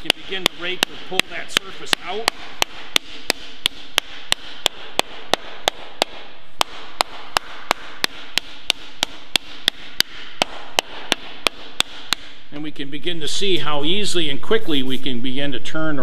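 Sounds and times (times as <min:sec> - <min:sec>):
slapper striking sheet metal: 0:00.0 - 0:12.5.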